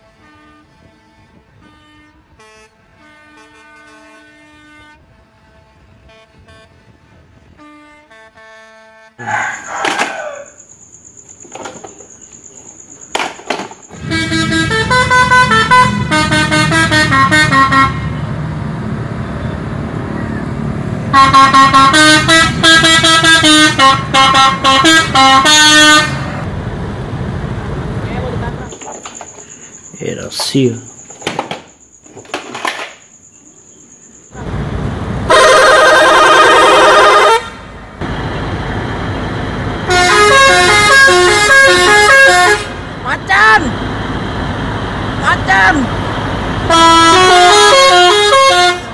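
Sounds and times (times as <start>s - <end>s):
musical air horn tune: 0.0s - 9.2s, 13.9s - 18.2s, 21.1s - 26.4s, 35.3s - 37.7s, 39.8s - 42.8s, 46.7s - 48.9s
bus engine rumble: 9.2s - 48.9s.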